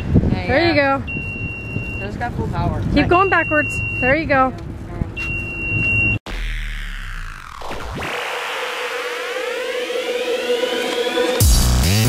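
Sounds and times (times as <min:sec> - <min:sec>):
reverse warning beeper: 0:01.0 - 0:02.2, 0:03.0 - 0:04.5, 0:05.1 - 0:07.5
electronic music sweeps: 0:06.3 - 0:12.0
electronic music track: 0:06.3 - 0:12.0.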